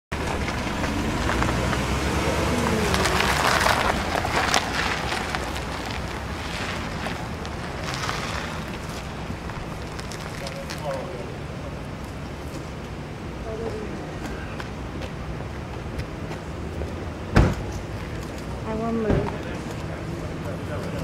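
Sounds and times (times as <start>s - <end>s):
vehicle engine and tyre rumble: 0.1s - 21.0s.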